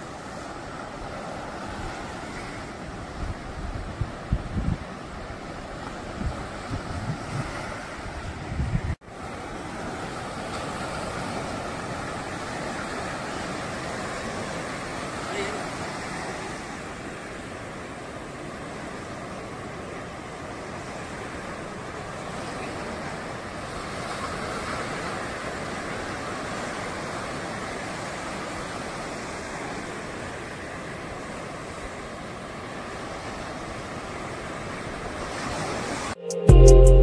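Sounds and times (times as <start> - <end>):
sea surf breaking on beach: 0.0 - 36.2.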